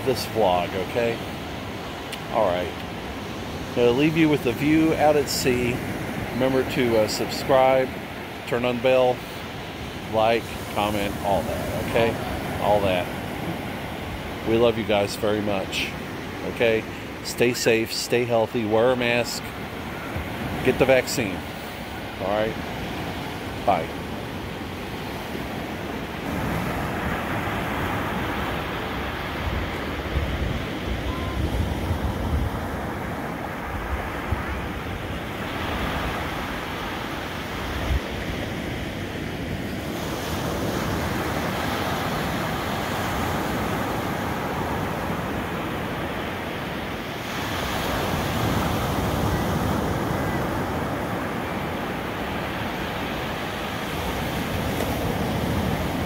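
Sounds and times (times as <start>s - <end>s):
waves breaking on beach: 0.0s - 56.0s
wind rumbling on microphone: 26.2s - 46.0s.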